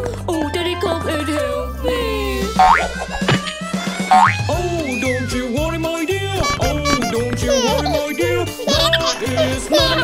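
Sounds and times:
bouncy cartoon music: 0.0 - 10.0
cartoon boing effects: 2.6 - 3.5, 4.1 - 4.5.

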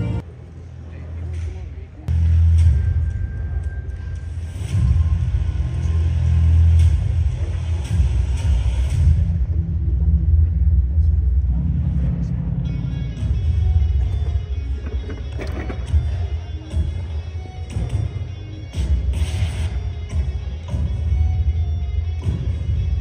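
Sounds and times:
music over sound system: 0.0 - 0.3, 1.3 - 23.0.

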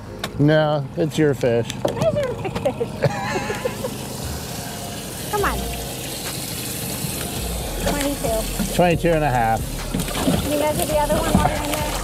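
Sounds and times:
wind: 0.0 - 12.0
lake water washing: 0.5 - 12.0
people laughing: 2.2 - 4.2.

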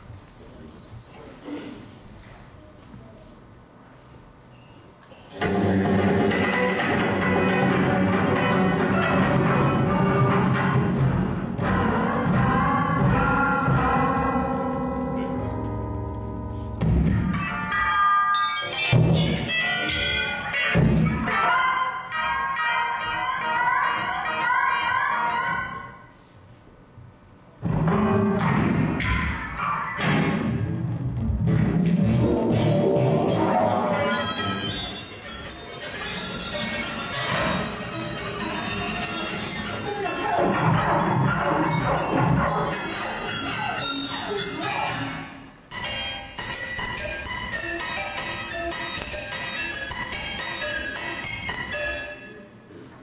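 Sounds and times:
steady held tones: 11.5 - 26.0, 32.6 - 52.9
processed electric guitar tones: 14.2 - 18.0.

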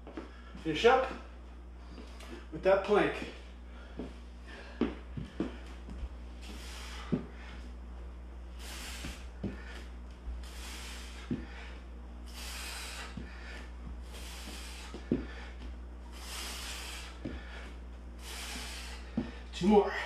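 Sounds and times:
man breathing hard: 3.4 - 7.8, 8.5 - 20.0
soft thuds: 13.1 - 15.8, 19.1 - 19.4.

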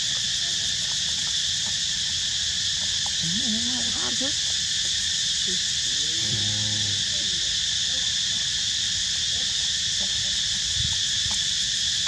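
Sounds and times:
insect chorus: 0.0 - 12.0.

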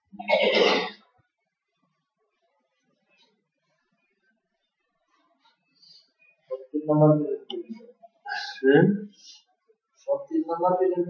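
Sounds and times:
person clearing throat: 0.2 - 1.0.

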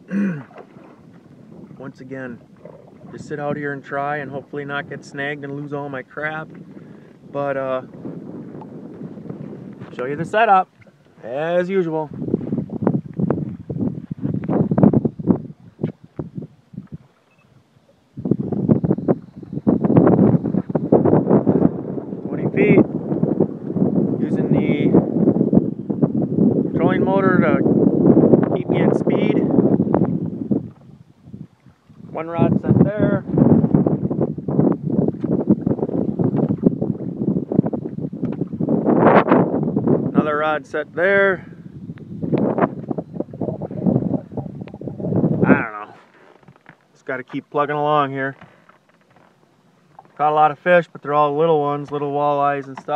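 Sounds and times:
boat and water rushing: 0.0 - 52.9
wind buffeting microphone: 0.0 - 52.9.

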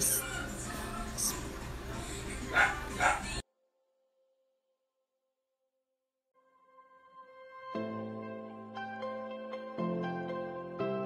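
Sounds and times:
background music: 0.0 - 3.4, 6.4 - 11.0
puppy yipping: 2.5 - 3.4.

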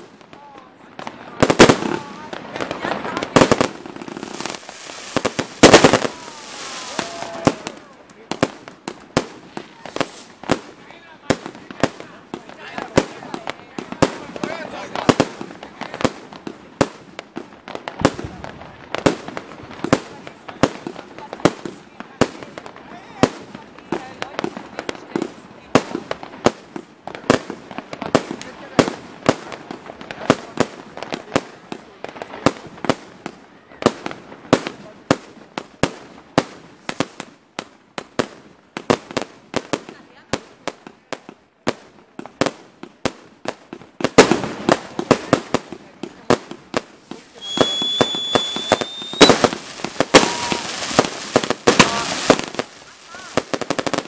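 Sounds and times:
fireworks bangs and crackles: 0.0 - 54.0.

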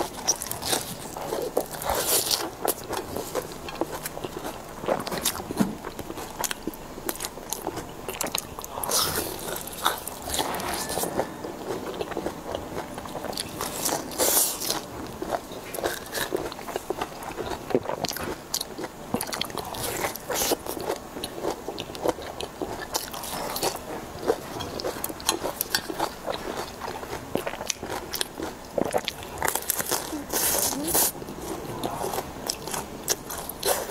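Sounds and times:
person chewing and biting: 0.0 - 33.9.

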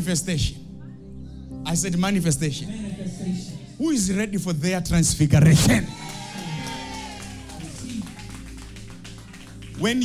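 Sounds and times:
electronic keyboard chords: 0.0 - 10.0.

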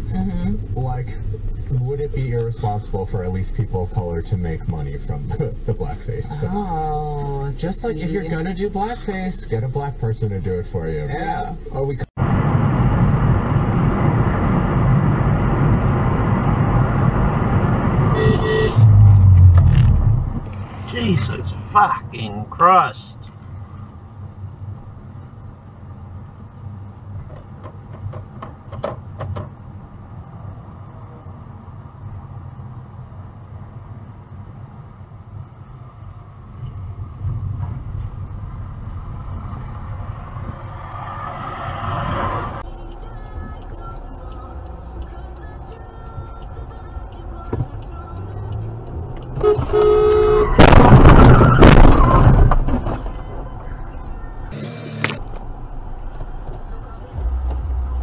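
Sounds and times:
loud low rumble: 0.0 - 20.6, 50.5 - 58.0
car road and engine noise: 0.0 - 58.0
passing large vehicle rush: 0.0 - 58.0
car horn honk: 18.1 - 19.1, 49.3 - 52.1, 54.5 - 55.3.

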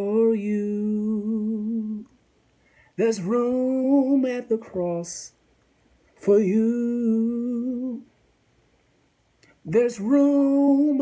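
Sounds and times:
man singing unaccompanied: 0.0 - 2.2, 2.8 - 5.4, 6.1 - 8.2, 9.4 - 11.0.

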